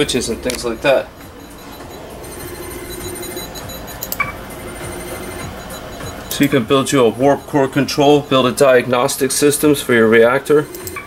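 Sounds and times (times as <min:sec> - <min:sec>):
electronic hum with high whines: 0:00.0 - 0:11.0
short beep: 0:00.7 - 0:09.2.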